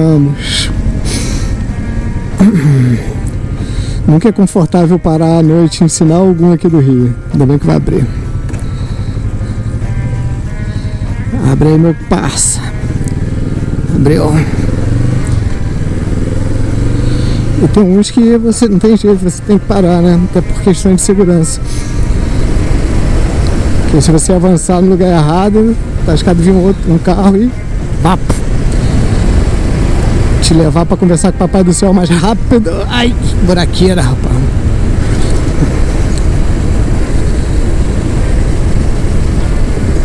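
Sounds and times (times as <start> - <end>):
motorcycle engine idling: 0.0 - 40.0
riding wind: 0.0 - 40.0
road noise: 0.0 - 40.0.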